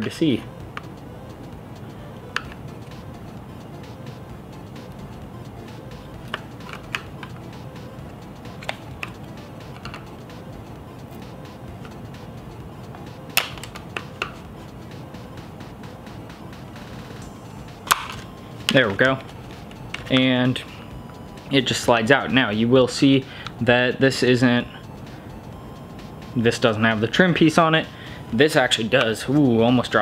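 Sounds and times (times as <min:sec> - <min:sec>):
quiet background music: 0:00.0 - 0:30.0
plastic clicks and taps: 0:08.6 - 0:10.1, 0:13.4 - 0:14.4.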